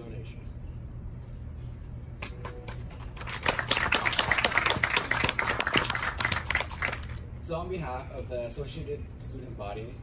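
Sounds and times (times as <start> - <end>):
audience applauding: 3.0 - 7.2.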